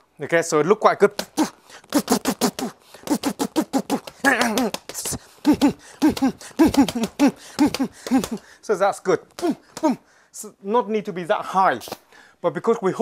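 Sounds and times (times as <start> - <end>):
person grunting: 1.2 - 8.4, 9.4 - 10.0
hands slapping leather bag: 1.2 - 8.5.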